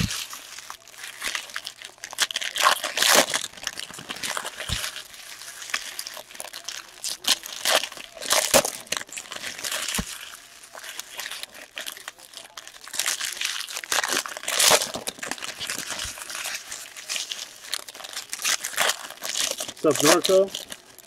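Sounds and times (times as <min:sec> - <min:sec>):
foil wrappers crinkling and tearing: 0:00.0 - 0:21.0.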